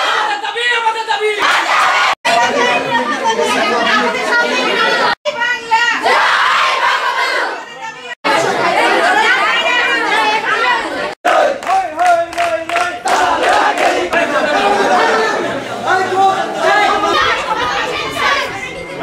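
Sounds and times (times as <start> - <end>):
crowd shouting and talking: 0.0 - 19.0.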